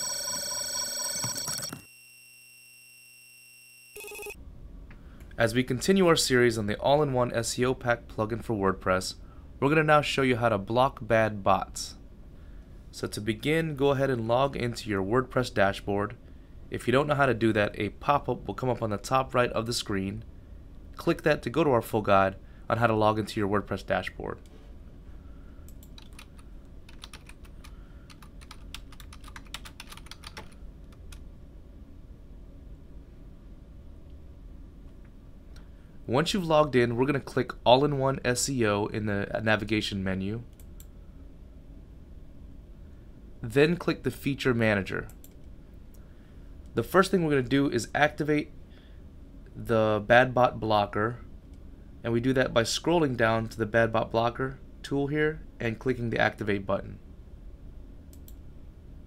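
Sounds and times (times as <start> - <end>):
faint electronic tone: 0.0 - 4.4
synthetic ringing tones: 0.0 - 4.4
typing on computer keyboard: 25.8 - 31.2.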